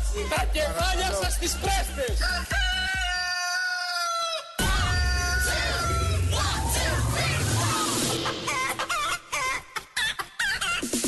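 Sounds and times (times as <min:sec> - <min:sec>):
music: 0:00.0 - 0:03.3, 0:04.6 - 0:11.0.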